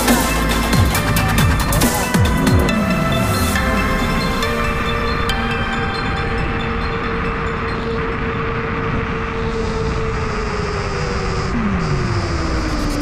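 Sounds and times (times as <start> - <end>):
road rumble: 0.0 - 13.0
wind: 0.0 - 13.0
electric scooter motor whine: 0.8 - 13.0.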